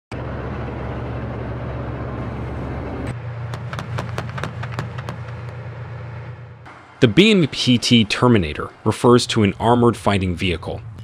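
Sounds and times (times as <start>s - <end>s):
tracked vehicle engine humming: 0.1s - 11.0s.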